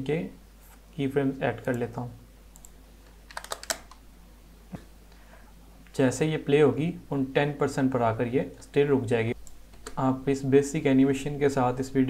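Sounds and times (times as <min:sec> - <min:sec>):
computer keyboard typing: 0:02.5 - 0:04.0.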